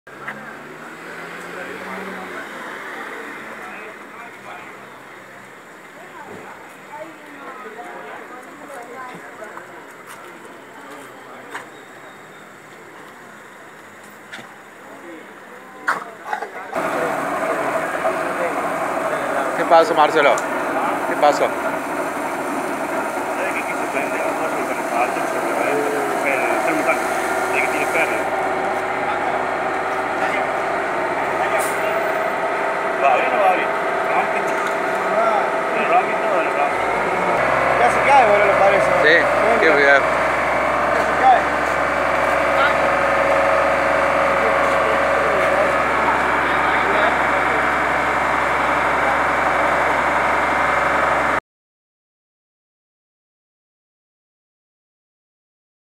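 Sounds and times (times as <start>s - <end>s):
distant people talking: 0.1s - 50.8s
indistinct voices: 0.1s - 51.4s
outdoor background noise: 0.1s - 51.4s
fire engine idling: 2.4s - 51.4s.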